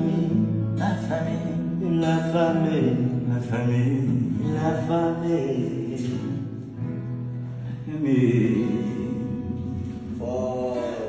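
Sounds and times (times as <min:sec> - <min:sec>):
man singing long notes: 0:00.0 - 0:06.7, 0:07.6 - 0:11.0.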